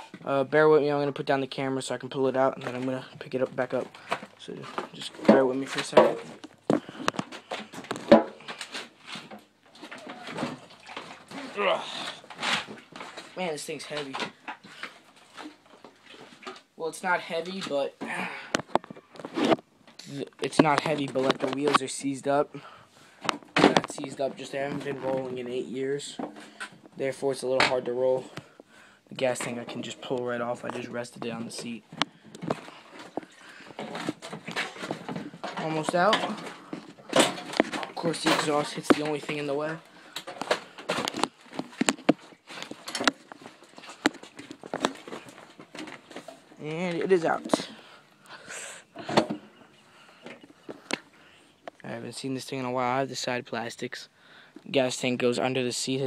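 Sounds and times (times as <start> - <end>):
handling knocks and clatter: 2.2 - 16.7, 17.4 - 22.0, 23.2 - 28.6, 29.2 - 47.8, 49.0 - 51.8.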